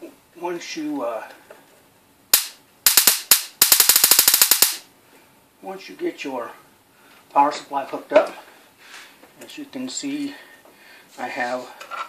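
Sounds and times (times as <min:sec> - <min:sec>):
high-voltage sparks snapping: 0:02.3 - 0:04.9.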